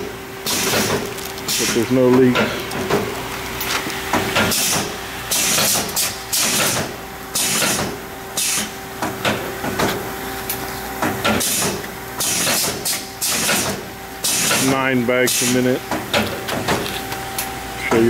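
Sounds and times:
faint steady machine hum: 0.0s - 18.0s
air hiss bursts: 7.4s - 8.8s.

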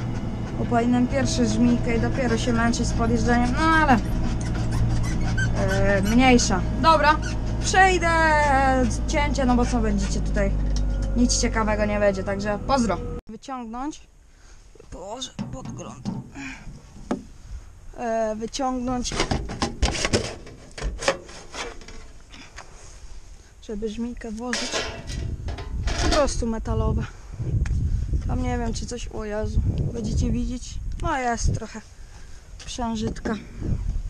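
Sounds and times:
metal hatch scraping open: 0.0s - 13.2s, 19.0s - 22.2s, 24.5s - 26.4s
tractor diesel engine drone: 0.0s - 13.2s
man speaking: 15.0s - 16.1s.

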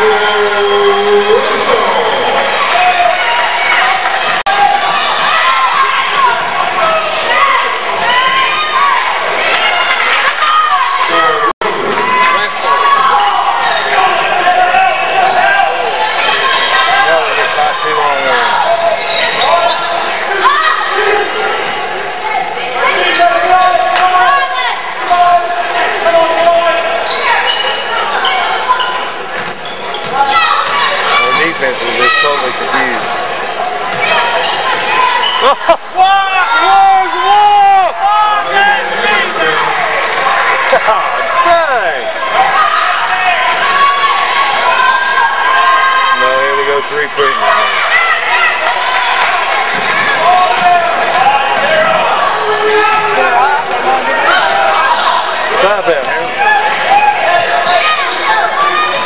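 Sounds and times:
voices of players and spectators: 0.0s - 59.0s
sneakers squeaking: 4.9s - 7.9s, 18.0s - 20.8s, 21.6s - 23.5s, 27.0s - 35.5s.

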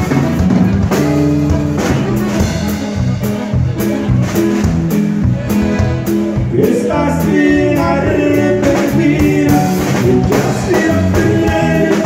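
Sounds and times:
button accordion melody: 0.0s - 12.0s
guitar and bass: 0.0s - 12.0s
drum strikes: 8.6s - 12.0s.

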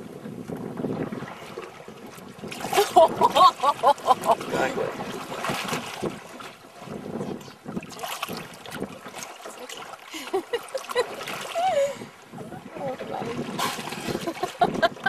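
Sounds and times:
water splashing against boat: 0.0s - 15.0s.

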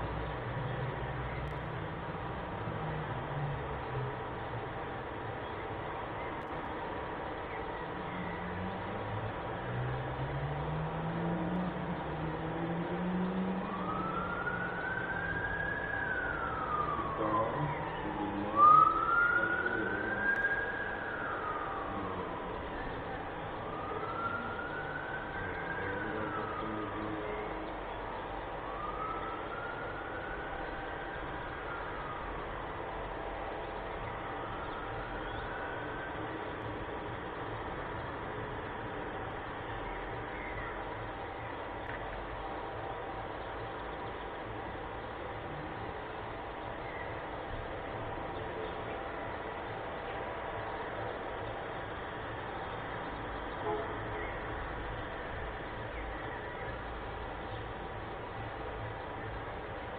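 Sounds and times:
faint steady tones: 0.0s - 59.9s
siren wailing: 12.5s - 37.2s.

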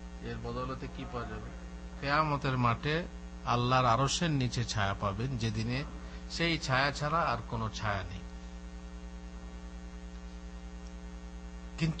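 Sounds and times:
pulsing electrical mains hum: 0.0s - 12.0s.

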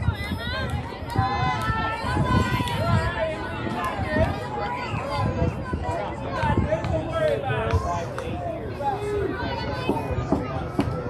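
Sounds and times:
girls talking and calling out: 0.0s - 6.7s.

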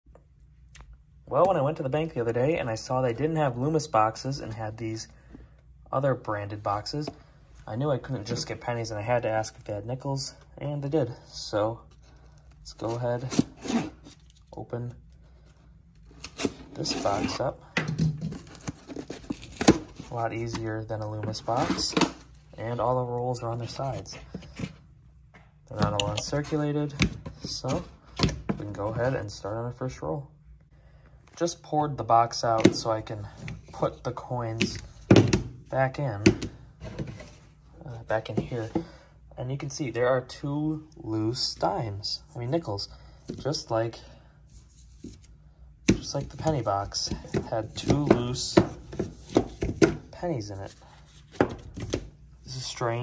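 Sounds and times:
cardboard and tape tearing: 18.4s - 20.2s.

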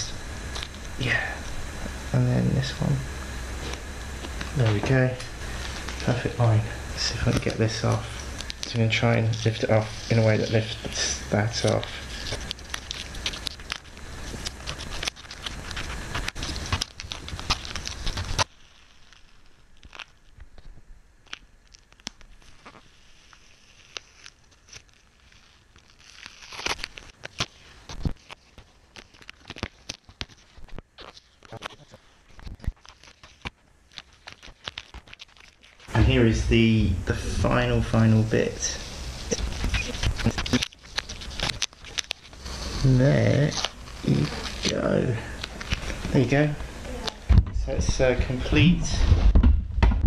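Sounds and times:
tape peeling and crackling: 0.0s - 49.4s.

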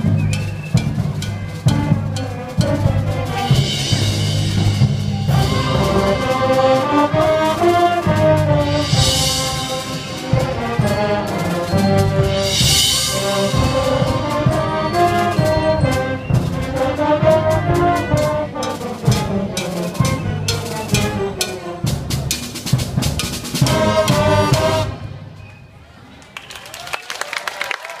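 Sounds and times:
concert band playing: 0.0s - 25.6s.

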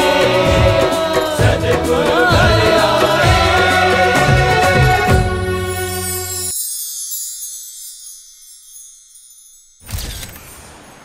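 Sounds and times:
shimmering high chime: 5.4s - 11.0s.

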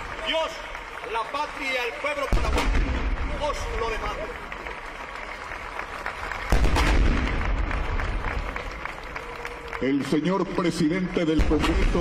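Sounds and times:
audience clapping: 0.0s - 12.0s
loud blast with deep rumble: 2.3s - 3.6s, 6.5s - 8.4s.

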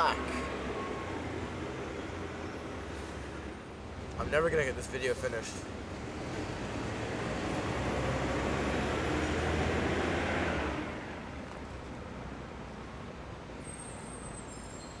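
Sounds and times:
steady background noise: 0.0s - 15.0s.

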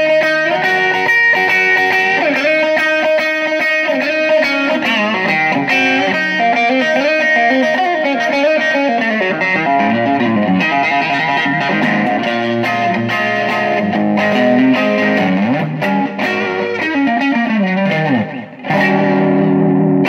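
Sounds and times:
overdriven electric guitar licks: 0.0s - 20.0s.

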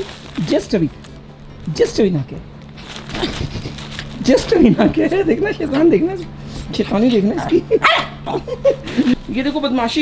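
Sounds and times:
small dog barking: 7.8s - 8.4s.

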